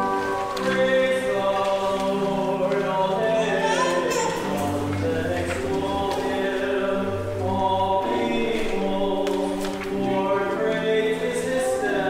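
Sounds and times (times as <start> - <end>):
choir chanting: 0.0 - 12.0.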